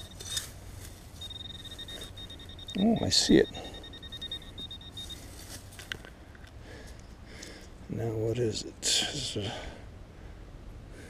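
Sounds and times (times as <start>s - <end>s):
hand digger scraping: 0.0s - 2.4s
metal detector beeping: 0.0s - 5.9s.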